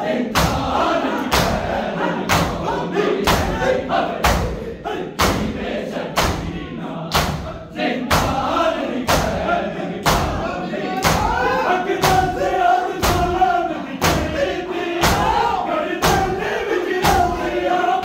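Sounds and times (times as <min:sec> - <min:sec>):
men chanting a lament: 0:00.0 - 0:18.0
men slapping chests in unison: 0:00.3 - 0:17.5.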